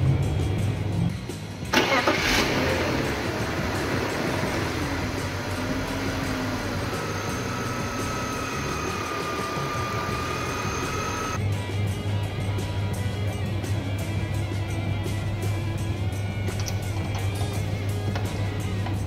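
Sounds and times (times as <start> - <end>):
car engine starting and idling: 1.6 - 11.4
starter motor burst: 1.8 - 11.4.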